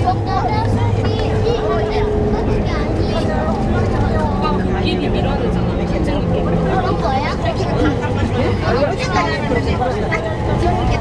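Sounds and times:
people talking: 0.0s - 11.0s
train rumble: 0.0s - 11.0s.

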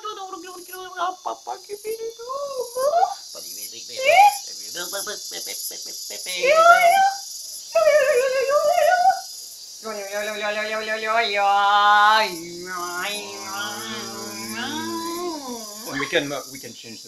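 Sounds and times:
man and woman speaking gibberish: 0.8s - 7.1s, 9.9s - 16.6s
wavering vocal sounds: 7.8s - 9.2s, 9.8s - 16.4s.

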